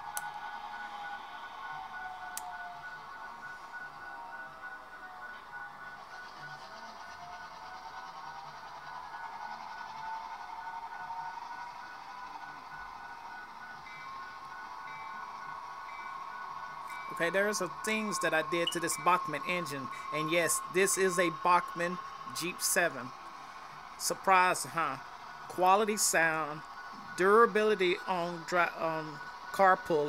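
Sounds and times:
pulsing higher tone: 0.0 - 30.0.

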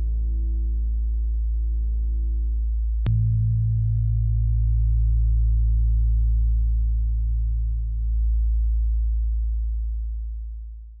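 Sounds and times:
deep bass drone: 0.0 - 11.0.

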